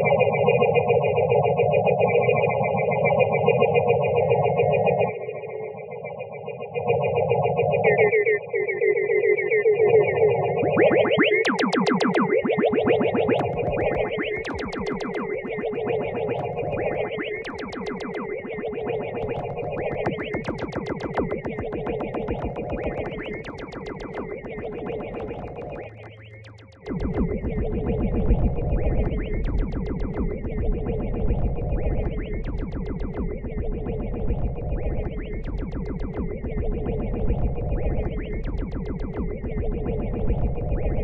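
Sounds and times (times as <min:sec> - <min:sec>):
sustained synth drone: 0:10.5 - 0:41.0
steady low bass: 0:24.4 - 0:41.0.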